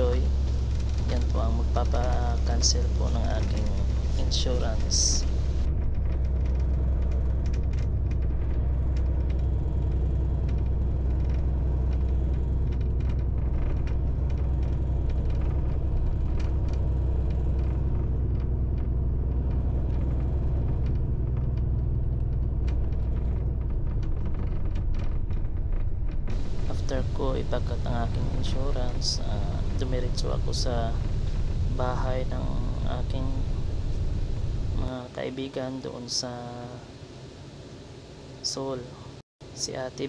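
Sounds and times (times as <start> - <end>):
ticks and rattles: 0.0 - 34.9
bus engine and road rumble: 0.0 - 40.0.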